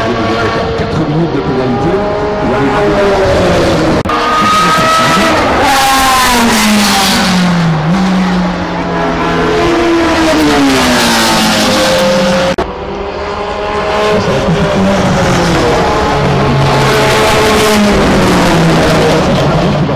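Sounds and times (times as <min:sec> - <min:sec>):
racing car engines passing: 0:00.0 - 0:19.9.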